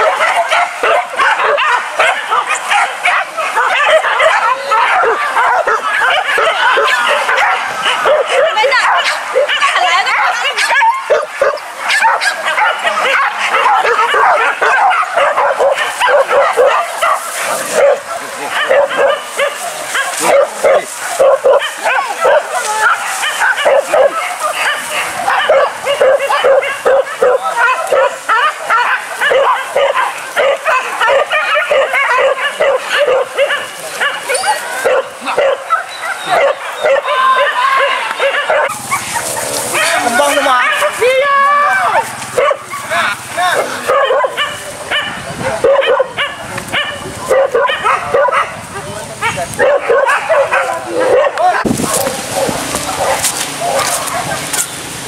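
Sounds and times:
dogs barking and yelping: 0.0 - 54.7.

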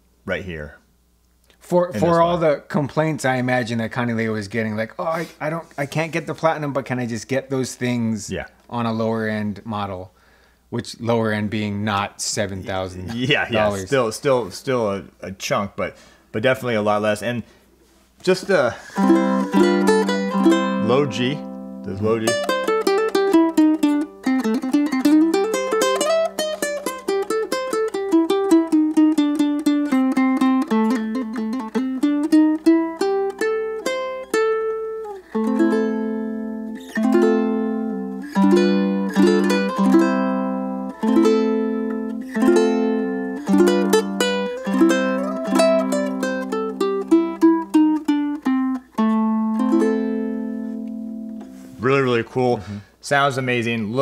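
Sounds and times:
ukulele fingerpicked melody: 18.9 - 51.8.

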